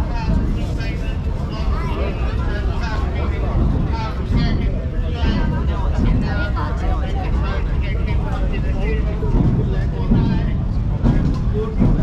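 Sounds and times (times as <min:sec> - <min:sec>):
passers-by talking: 0:00.0 - 0:12.0
steady low rumble: 0:00.0 - 0:12.0.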